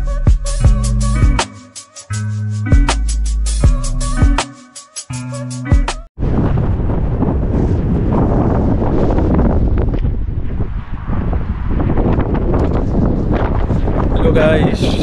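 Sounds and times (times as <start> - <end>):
wind blowing across microphone: 6.2 - 15.0.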